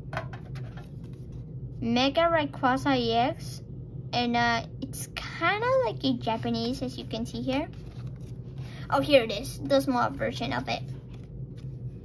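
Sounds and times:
low hum: 0:00.0 - 0:12.0
person speaking: 0:04.8 - 0:11.2.

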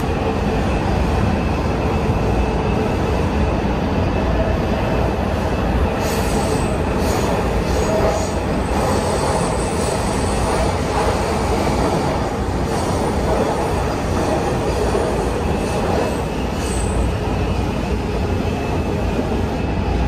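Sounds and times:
train wheels rumbling: 0:00.0 - 0:20.0.

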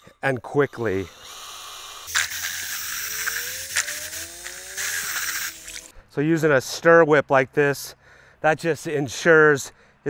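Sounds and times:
power drill motor whining: 0:00.6 - 0:05.9.

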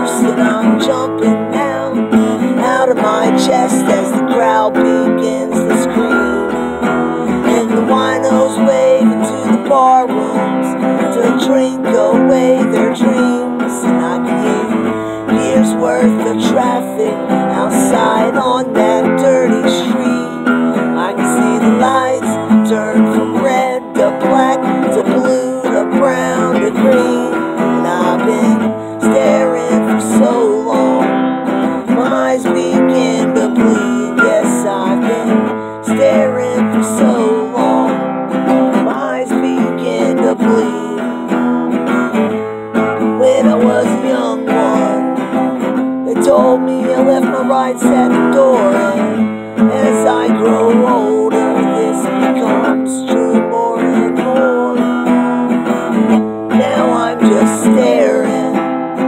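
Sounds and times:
acoustic guitar strumming: 0:00.0 - 0:59.0.

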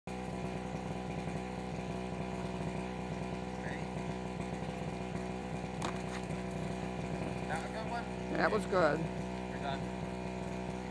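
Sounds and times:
small engine running: 0:00.1 - 0:10.9.

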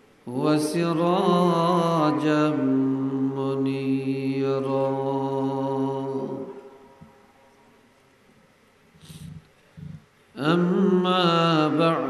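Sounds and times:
breath into microphone: 0:09.0 - 0:10.0.

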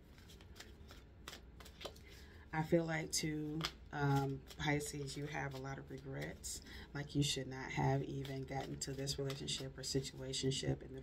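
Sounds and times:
cards shuffling: 0:00.1 - 0:02.3, 0:03.4 - 0:06.5, 0:07.7 - 0:10.6.

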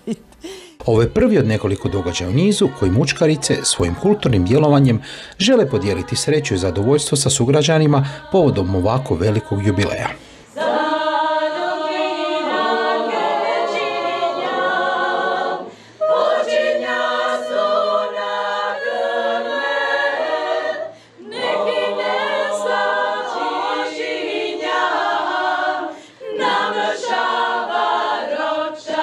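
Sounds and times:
women's choir singing: 0:00.8 - 0:29.0.

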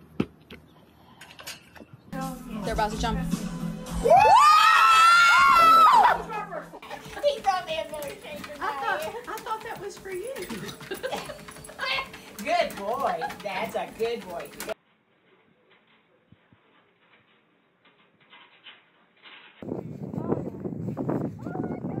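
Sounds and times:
loud high-pitched scream: 0:04.0 - 0:06.2.

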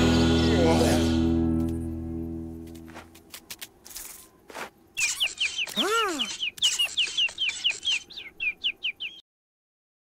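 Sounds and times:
cartoon chick chirping: 0:05.0 - 0:09.2.

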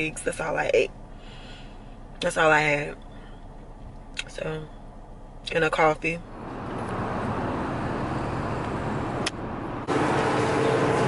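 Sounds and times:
road noise inside car: 0:00.0 - 0:11.0.

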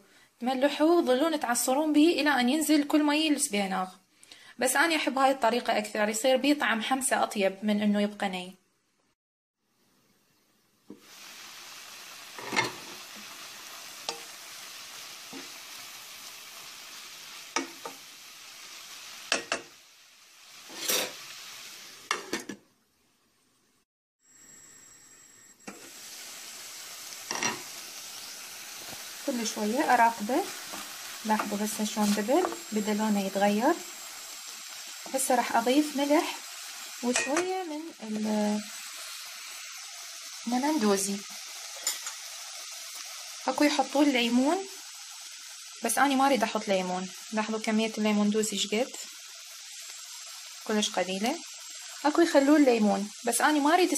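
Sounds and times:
spinach sizzling in a pot: 0:00.0 - 0:08.4, 0:10.8 - 0:22.8, 0:23.6 - 0:53.9.

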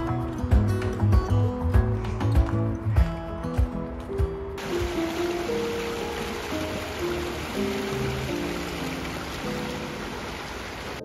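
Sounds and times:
slow background music: 0:00.0 - 0:11.0
stream water running over rocks: 0:04.6 - 0:11.0.

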